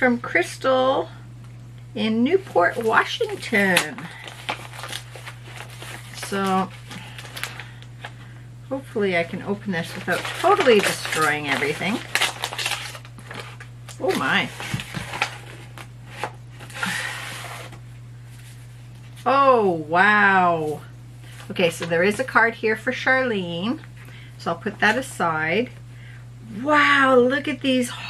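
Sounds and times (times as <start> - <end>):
steady low hum: 0.0 - 28.0
paper envelope rustling: 2.4 - 8.2, 9.8 - 19.2.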